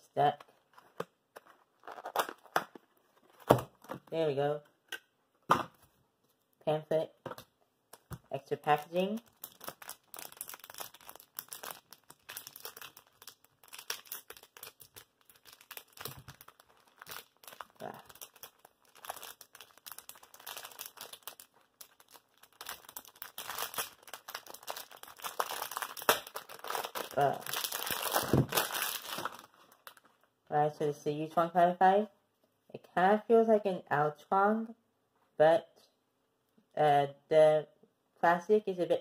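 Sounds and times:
plastic packaging crinkling: 0:00.5 - 0:04.0, 0:08.8 - 0:30.3.

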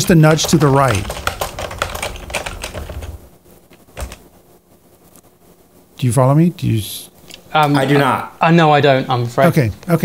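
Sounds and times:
computer keyboard typing: 0:00.0 - 0:03.2, 0:03.9 - 0:04.2.

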